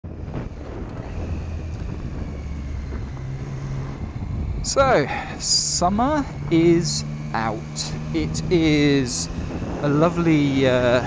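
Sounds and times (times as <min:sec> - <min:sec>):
wind noise on microphone: 0:00.0 - 0:04.8, 0:08.9 - 0:11.0
motorcycle engine running: 0:00.0 - 0:11.0.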